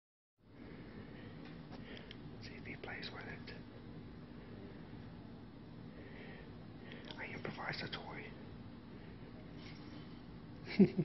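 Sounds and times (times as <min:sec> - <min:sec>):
low room hum: 0:00.4 - 0:11.0.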